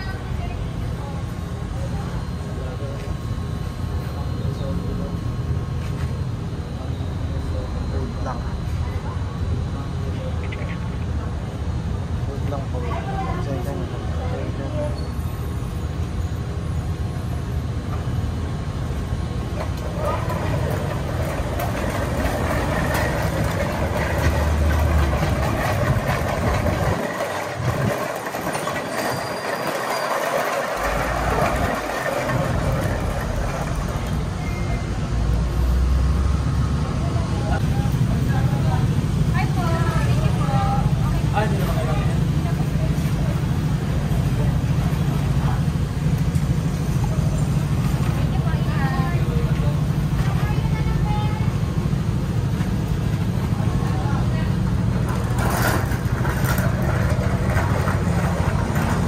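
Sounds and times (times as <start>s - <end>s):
outdoor traffic noise: 0.0s - 59.0s
vehicle engine running: 18.8s - 59.0s
faint voices: 19.5s - 35.2s.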